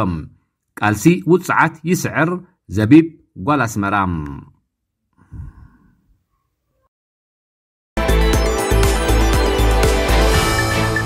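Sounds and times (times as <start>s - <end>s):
person sighing: 5.2s - 6.0s.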